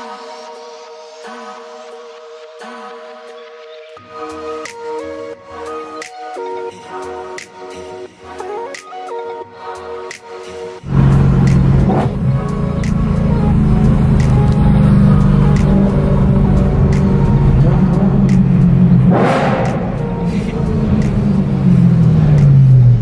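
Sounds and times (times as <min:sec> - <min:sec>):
music playing: 0:00.0 - 0:23.0
car engine drone: 0:10.8 - 0:23.0
road noise: 0:10.8 - 0:23.0.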